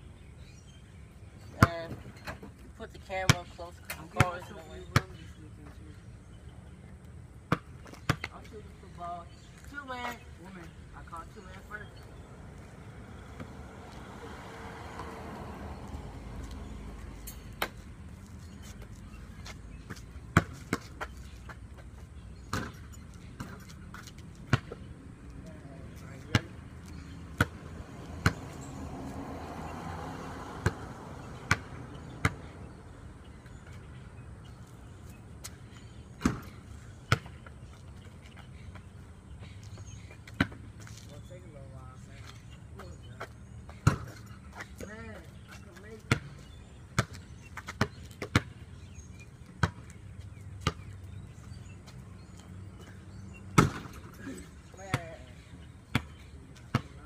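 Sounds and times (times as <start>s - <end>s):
basketball bouncing on concrete: 7.5s - 8.6s, 19.4s - 21.6s, 22.4s - 28.9s, 30.6s - 32.5s, 36.2s - 37.5s, 40.2s - 40.9s, 43.7s - 44.2s, 44.8s - 48.7s, 49.5s - 50.0s, 50.6s - 51.0s, 53.6s - 54.1s, 55.9s - 57.0s.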